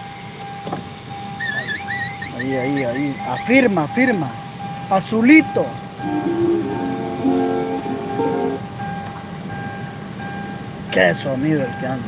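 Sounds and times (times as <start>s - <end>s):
music through car stereo: 6.0s - 9.7s.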